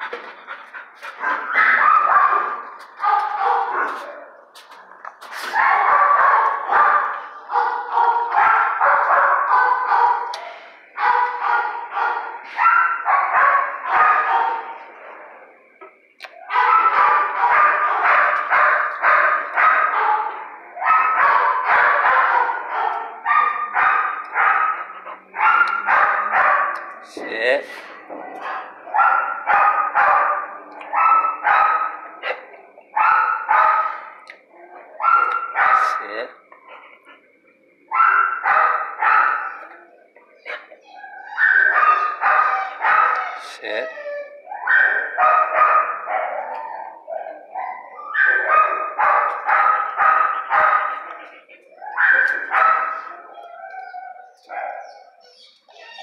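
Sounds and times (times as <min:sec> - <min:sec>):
dogs barking: 0:00.0 - 0:56.0.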